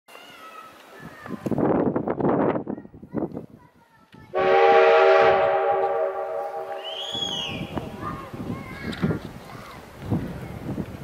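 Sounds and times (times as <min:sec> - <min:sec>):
steam locomotive whistle: 0:04.4 - 0:07.9.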